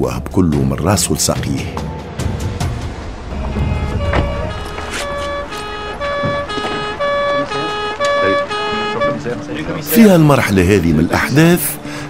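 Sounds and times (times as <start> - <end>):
background music: 0.0 - 12.0
two-tone siren: 3.3 - 9.4.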